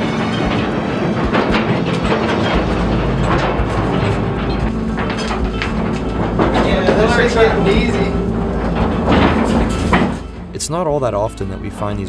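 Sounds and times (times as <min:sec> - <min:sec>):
ore car wheels rattling on rails: 0:00.0 - 0:12.0.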